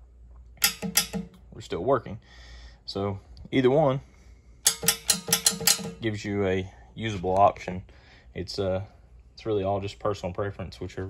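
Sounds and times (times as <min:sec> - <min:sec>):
solenoid valves clicking: 0:00.6 - 0:01.4, 0:04.6 - 0:06.0.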